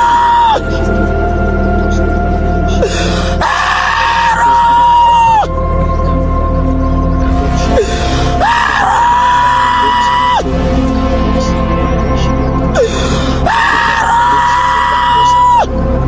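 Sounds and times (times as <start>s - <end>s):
worship music keyboard and bass: 0.0s - 16.0s.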